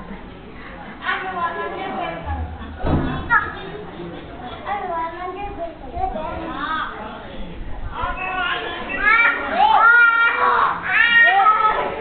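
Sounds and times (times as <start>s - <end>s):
children squealing and shrieking: 8.1s - 12.0s.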